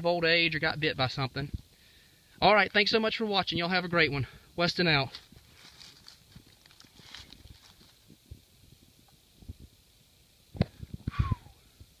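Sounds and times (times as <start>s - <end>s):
dry leaves rustling: 5.0s - 8.3s.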